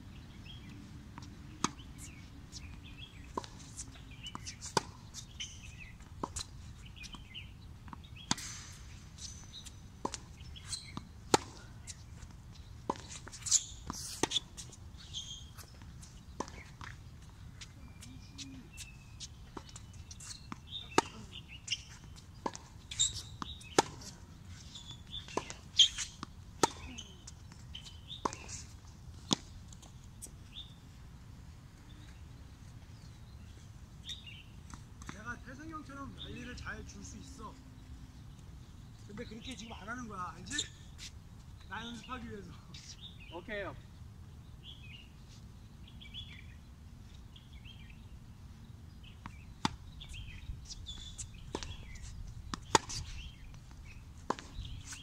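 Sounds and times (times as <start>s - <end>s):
birds chirping: 0.1s - 30.9s, 31.7s - 55.0s
tennis balls struck by racquets: 1.2s - 12.0s, 18.3s - 24.2s, 25.0s - 29.5s, 51.2s - 55.0s.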